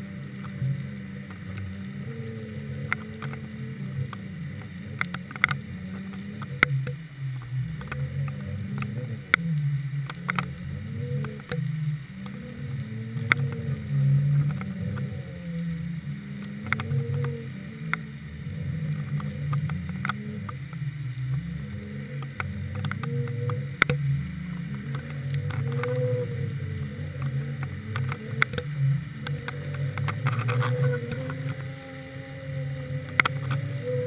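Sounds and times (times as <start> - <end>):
wavering underwater hum: 0.0 - 34.0
sharp clicks: 0.4 - 18.2, 18.9 - 24.0, 24.6 - 31.8.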